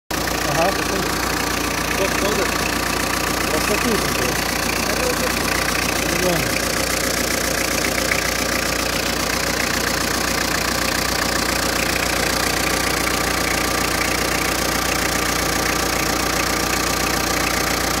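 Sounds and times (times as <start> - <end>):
diesel engine idling: 0.1 - 18.0.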